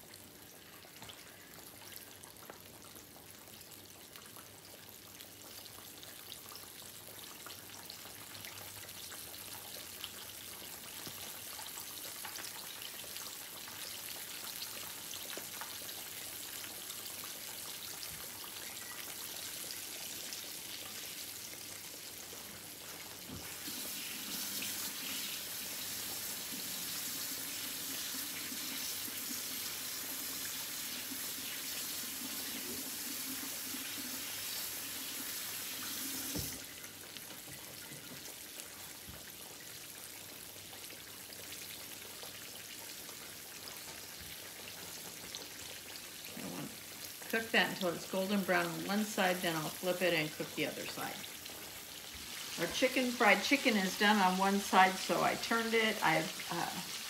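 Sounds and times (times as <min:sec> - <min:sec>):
chicken sizzling in hot oil: 0:00.0 - 0:57.0
tap running into sink: 0:36.2 - 0:36.6
tap shut off knock: 0:36.3 - 0:36.6.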